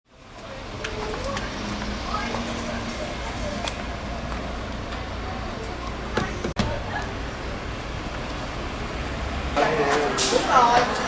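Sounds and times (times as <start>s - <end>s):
traffic rumble: 0.1s - 11.0s
restaurant chatter: 0.4s - 8.2s, 9.5s - 11.0s.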